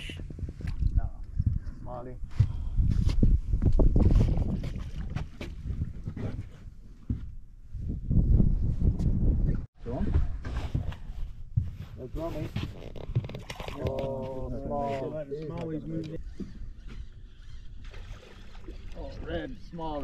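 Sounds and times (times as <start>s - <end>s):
wind rumbling on microphone: 0.0s - 14.6s
voices: 13.8s - 16.3s.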